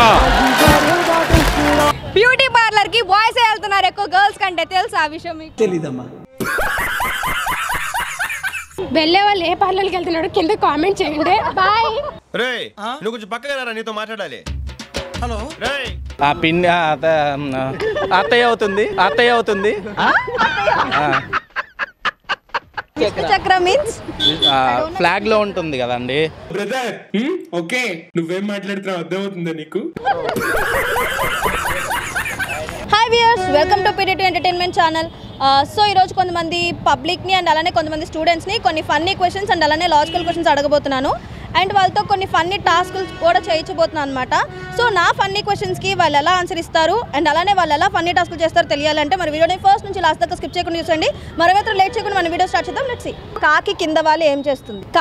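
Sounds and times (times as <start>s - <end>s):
person laughing: 6.4s - 8.8s, 17.6s - 22.9s, 30.0s - 32.9s.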